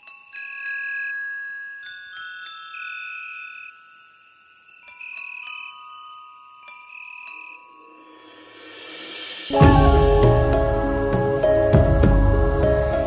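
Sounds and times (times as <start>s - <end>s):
bell-like chime notes: 4.7s - 13.0s
high steady shimmer: 7.6s - 13.0s
full music: 9.5s - 13.0s.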